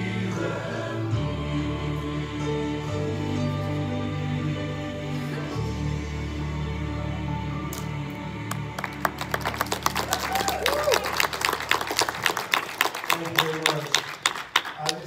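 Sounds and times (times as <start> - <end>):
congregation applauding: 8.5 - 15.0.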